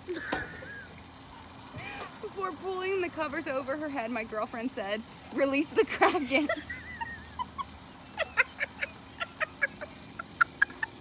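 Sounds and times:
women laughing: 0.0s - 1.0s, 5.8s - 11.0s.

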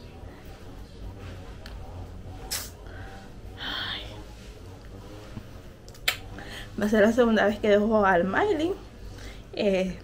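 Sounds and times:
low steady hum: 0.0s - 10.0s
woman speaking: 6.6s - 10.0s.

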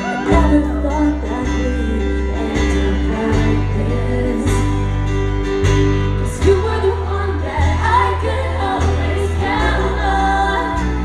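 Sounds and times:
women singing with harmonies: 0.0s - 5.2s, 6.2s - 11.0s
acoustic guitar: 0.0s - 11.0s
sustained bass notes: 0.0s - 11.0s.

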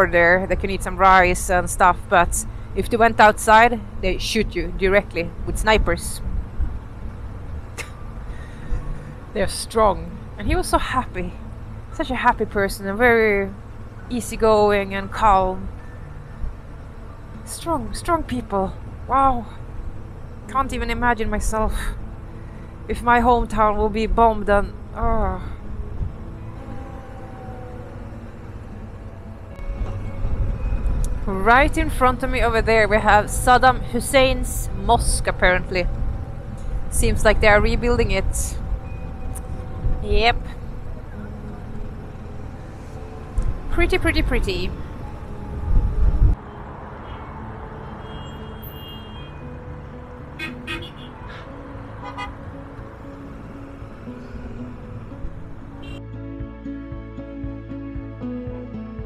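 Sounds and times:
quiet background music: 0.0s - 59.0s
wind rush on microphone: 43.4s - 46.4s
wind rush of motorcycle ride: 45.4s - 46.4s
car horns tooting: 47.9s - 49.5s, 50.4s - 52.6s, 55.8s - 56.0s.

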